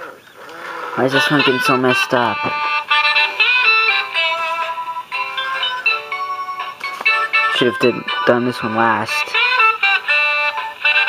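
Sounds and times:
tinny electronic saxophone melody: 0.4 - 11.0.

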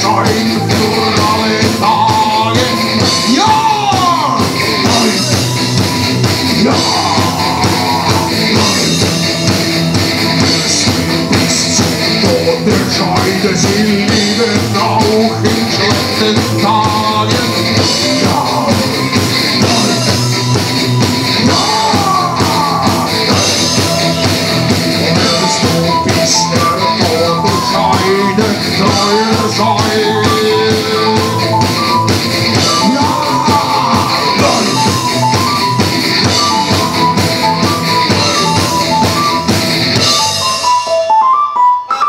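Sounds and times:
man singing: 0.0 - 9.6, 10.2 - 20.7, 21.3 - 36.9, 37.9 - 39.3
drum kit steady beat: 0.0 - 41.2
distorted electric guitar: 0.0 - 42.0
live rock band playing: 0.0 - 42.0.

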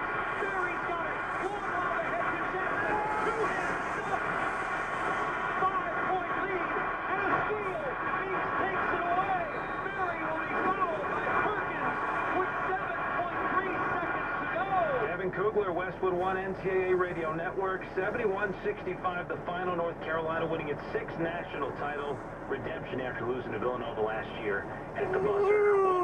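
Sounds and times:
dense background din: 0.0 - 26.0
sportscaster on am radio: 0.0 - 26.0.

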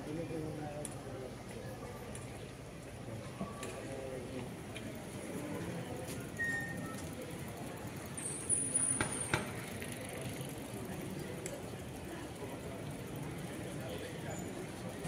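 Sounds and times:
faint murmured voices: 0.0 - 15.0.

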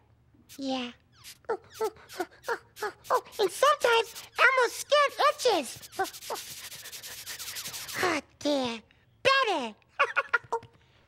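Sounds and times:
scratchy rubbing: 1.2 - 8.0.

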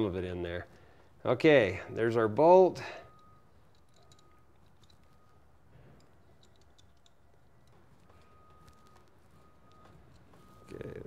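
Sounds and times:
small metal clicks: 2.9 - 11.0.

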